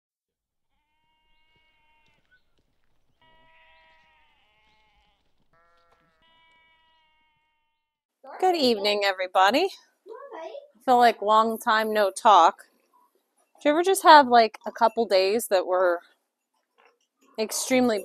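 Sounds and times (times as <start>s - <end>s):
lambs bleating: 0.7s - 7.8s.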